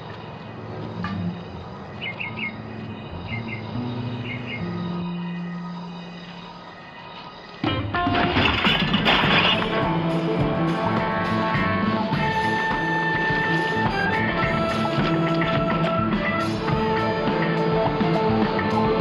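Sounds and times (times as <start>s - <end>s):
loud dramatic music: 7.6s - 19.0s
wire trash basket crashing over: 7.7s - 9.9s.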